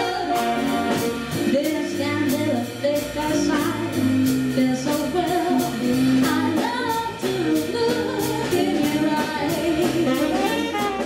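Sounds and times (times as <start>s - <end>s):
live band with horns: 0.0s - 11.0s
woman singing: 0.0s - 11.0s.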